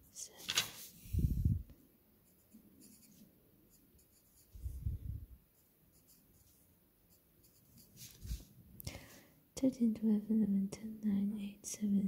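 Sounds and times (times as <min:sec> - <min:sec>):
pencil scratching on paper: 0:02.2 - 0:04.7, 0:05.5 - 0:08.5.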